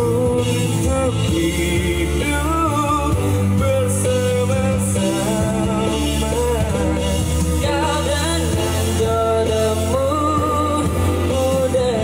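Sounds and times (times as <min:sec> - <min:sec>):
man singing into a microphone: 0:00.0 - 0:12.0.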